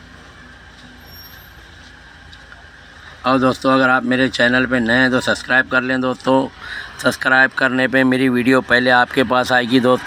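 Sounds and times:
background rumble and hiss: 0.0 - 10.0.

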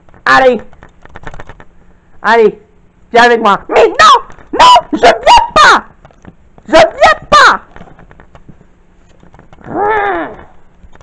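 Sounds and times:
high-pitched vocal squeaks: 9.6 - 10.6.

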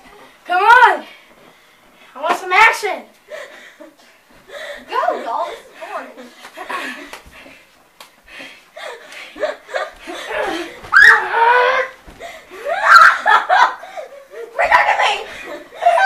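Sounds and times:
children laughing and exclaiming: 4.6 - 7.2, 8.8 - 16.0.

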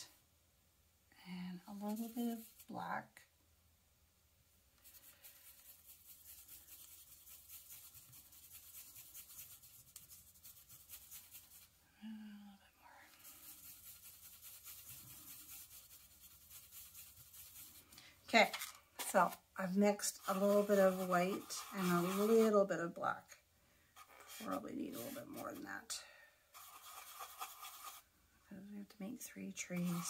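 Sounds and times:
paintbrush scratching on plate: 1.7 - 2.7, 4.8 - 11.7, 13.1 - 17.9, 19.0 - 22.7, 24.0 - 25.9, 26.5 - 28.0, 29.5 - 30.0.

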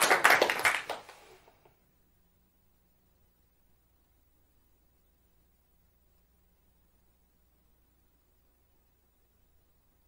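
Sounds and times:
audience applauding: 0.0 - 1.5.

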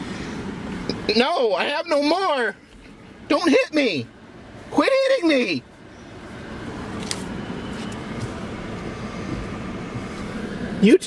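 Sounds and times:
car engine rumble from inside cabin: 0.0 - 11.0.

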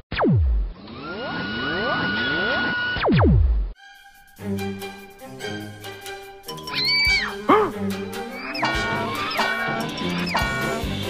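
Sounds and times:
rising pitch sweeps: 6.6 - 10.9
high whistling tone: 6.7 - 7.5.

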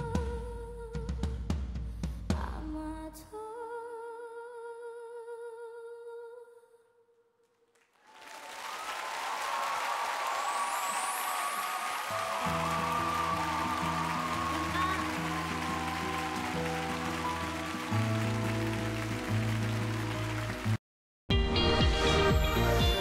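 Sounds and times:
audience applauding and cheering: 7.8 - 20.8.

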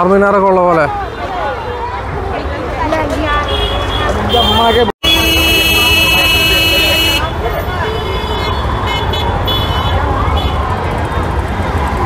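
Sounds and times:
crowd chatter: 0.0 - 12.0
street traffic: 0.0 - 12.0
vehicle horn: 3.4 - 10.0.

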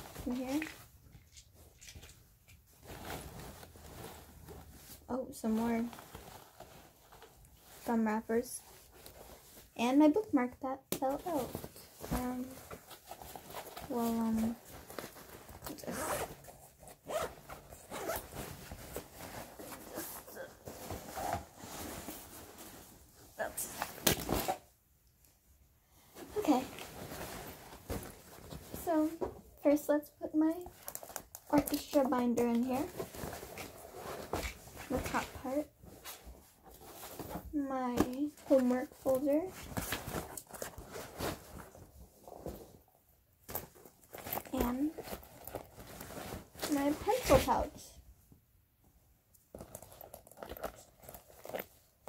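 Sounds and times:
backpack fabric rustling: 2.7 - 9.7, 11.1 - 24.6, 26.3 - 29.3, 32.7 - 42.8, 43.5 - 47.7, 49.5 - 52.0
zipper: 15.6 - 21.6, 49.6 - 51.8.

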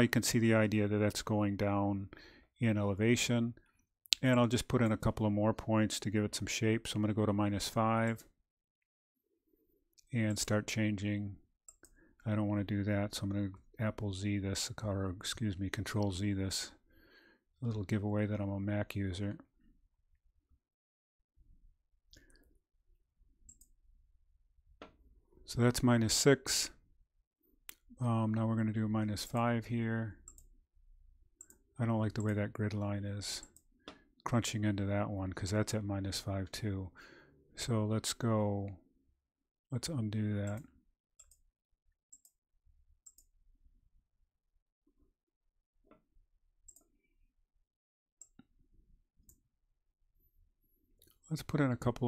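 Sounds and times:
computer mouse clicks: 23.5 - 23.8, 43.0 - 43.3.

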